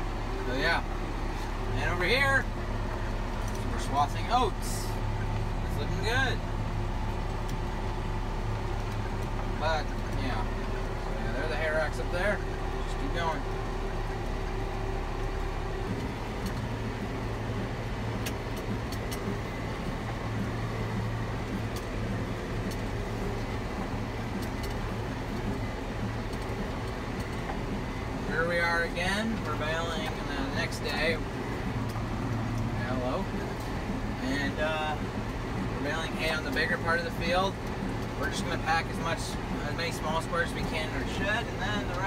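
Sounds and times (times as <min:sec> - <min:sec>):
tractor engine drone: 0:00.0 - 0:42.0.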